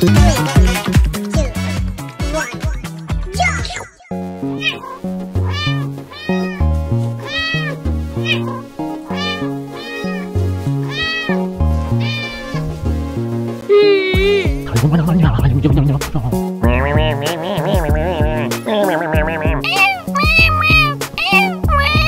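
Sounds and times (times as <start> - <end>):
electronic music with bass line: 0.0 - 3.6, 14.2 - 19.7
cat meows set to a tune: 4.4 - 12.8, 19.6 - 22.0.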